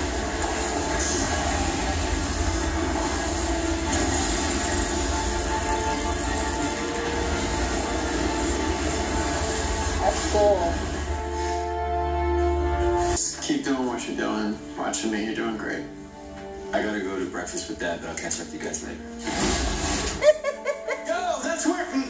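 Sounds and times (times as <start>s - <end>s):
fire roaring on television: 0.0s - 15.5s, 17.5s - 20.9s.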